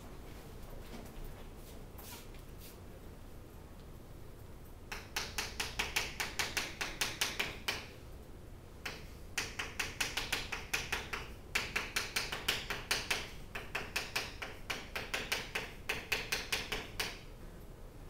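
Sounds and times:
chalk tapping and scraping on chalkboard: 2.0s - 2.8s, 4.9s - 7.9s, 8.8s - 17.2s.

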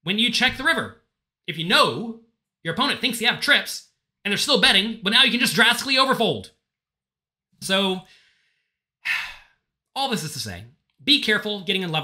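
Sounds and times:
man speaking: 0.0s - 6.5s, 7.6s - 8.1s, 10.0s - 12.0s.

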